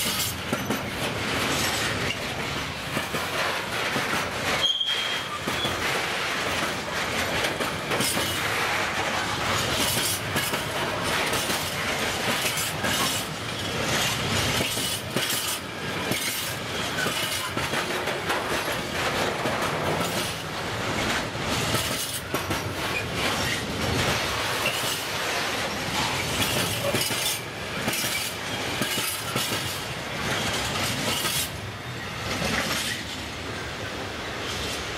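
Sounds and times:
train wheels clattering over rail joints: 0.0s - 33.3s.

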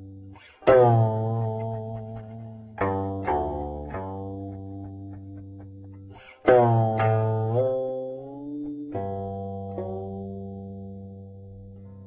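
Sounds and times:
guqin plucked notes: 0.0s - 12.0s.

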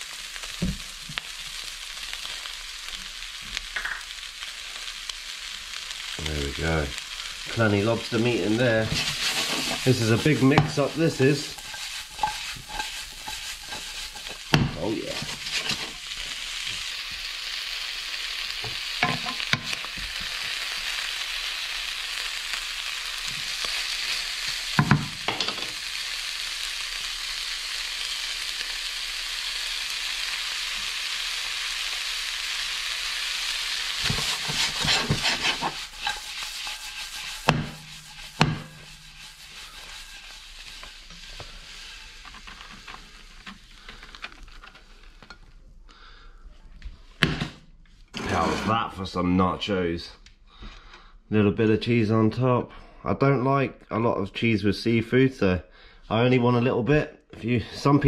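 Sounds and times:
food sizzling in frying pan: 0.0s - 45.5s
pan knocking: 34.0s - 39.4s.

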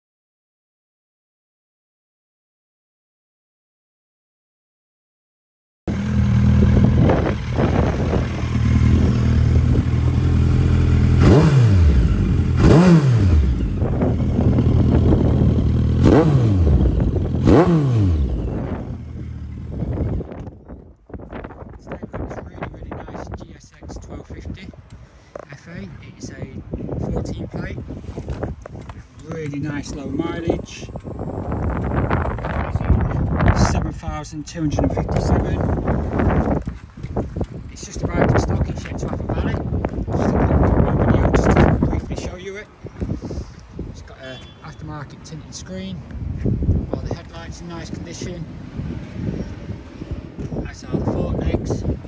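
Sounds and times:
motorcycle engine idling: 5.9s - 12.6s, 13.4s - 20.3s
wind buffeting microphone: 5.9s - 52.0s.

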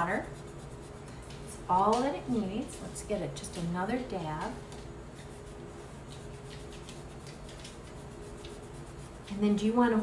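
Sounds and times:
paper towel rubbing on chalkboard: 0.0s - 1.0s, 4.4s - 10.0s.

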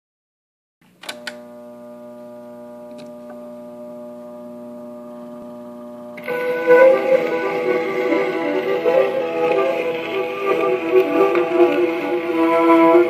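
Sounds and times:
phonograph hum: 1.0s - 13.0s
record surface noise: 5.2s - 13.0s.

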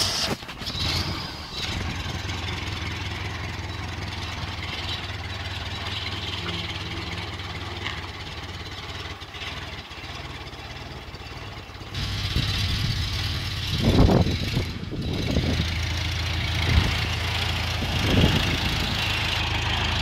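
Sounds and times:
forklift engine running: 0.0s - 20.0s.

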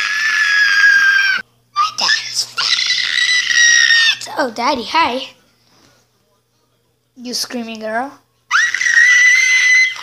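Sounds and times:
long high-pitched scream: 0.0s - 4.2s, 8.5s - 10.0s.

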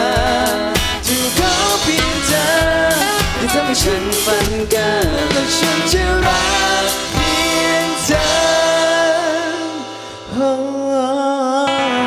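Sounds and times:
band playing live: 0.0s - 12.0s
man singing long notes: 0.0s - 12.0s.

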